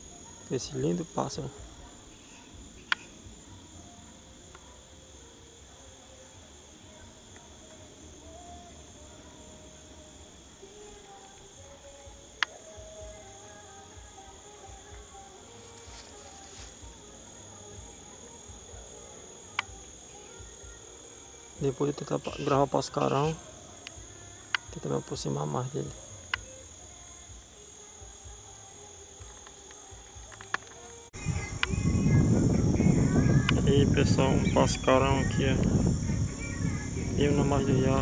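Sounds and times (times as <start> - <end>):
high-pitched insect chorus: 0.0 - 38.0.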